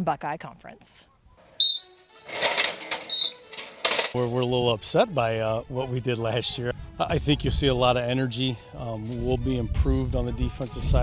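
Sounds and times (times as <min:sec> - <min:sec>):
short high squeak: 0:01.6 - 0:02.0, 0:03.0 - 0:03.6
scraping and hitting blocking sled: 0:02.3 - 0:04.3.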